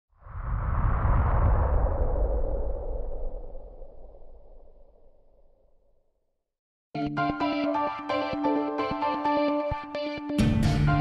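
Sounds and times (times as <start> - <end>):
whoosh with deep rumble: 0.1 - 6.0.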